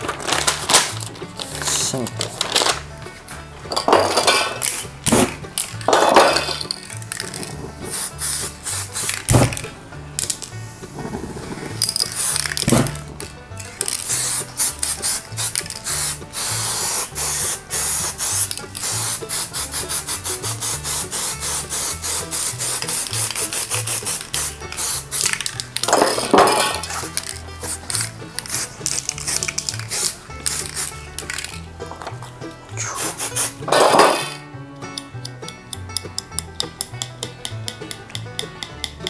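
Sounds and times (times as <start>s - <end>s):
spray-paint cans hissing: 0.0s - 2.8s, 3.7s - 34.5s
background music: 0.0s - 39.0s.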